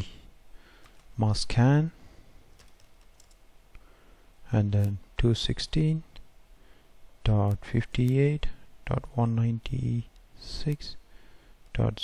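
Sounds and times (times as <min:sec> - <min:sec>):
computer keyboard key presses: 0:02.6 - 0:03.4.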